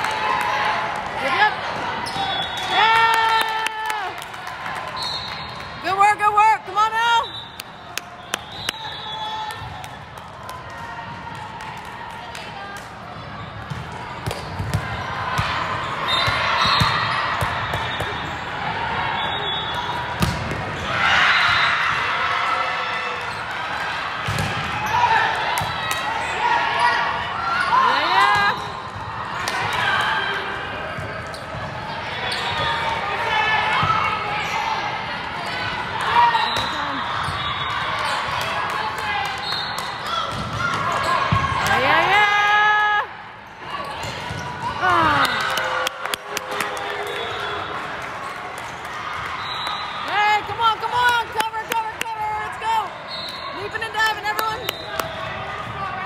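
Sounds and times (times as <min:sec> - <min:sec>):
sneakers squeaking on court: 0:02.0 - 0:02.7, 0:43.5 - 0:44.7.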